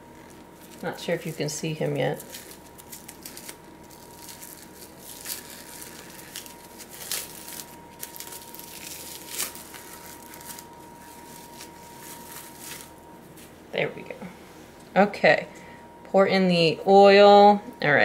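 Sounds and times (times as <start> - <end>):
plastic wrapping crinkling and tearing: 0.1 - 13.5.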